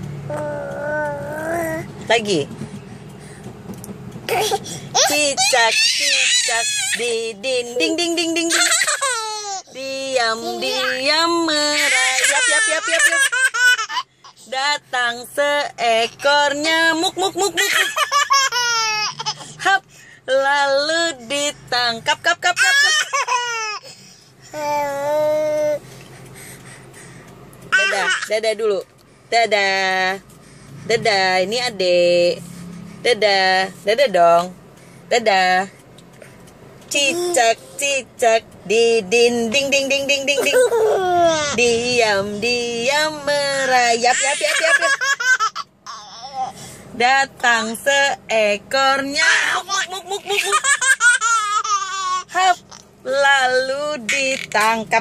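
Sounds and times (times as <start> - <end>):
baby laughing: 8.5 - 9.6, 11.8 - 14.0, 17.1 - 19.5, 22.6 - 23.9, 40.4 - 41.6, 44.2 - 46.5, 49.3 - 52.3.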